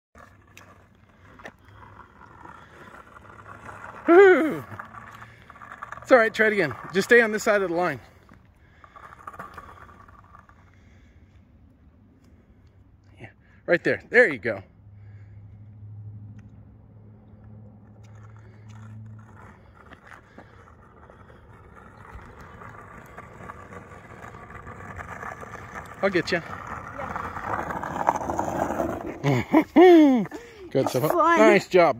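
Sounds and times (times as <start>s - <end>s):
skateboard wheels rolling on asphalt: 0.1s - 31.9s.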